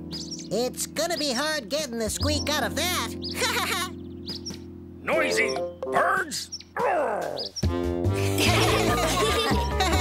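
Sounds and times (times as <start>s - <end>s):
background music: 0.0s - 10.0s
music cue: 0.0s - 10.0s
cartoon character voice: 5.1s - 7.4s.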